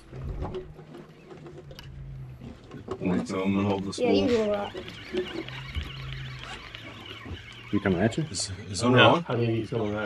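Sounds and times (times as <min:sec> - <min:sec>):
boat motor humming: 0:00.0 - 0:10.0.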